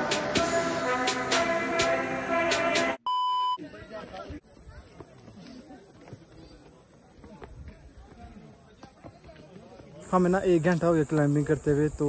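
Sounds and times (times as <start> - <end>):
background music with a beat: 0.0 - 3.0
faint outdoor sound: 0.0 - 12.0
electronic censor beep: 3.1 - 3.6.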